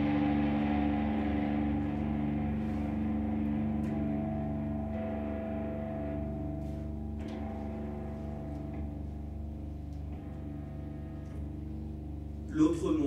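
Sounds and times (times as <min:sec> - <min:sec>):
electric guitar droning chord: 0:00.0 - 0:13.0.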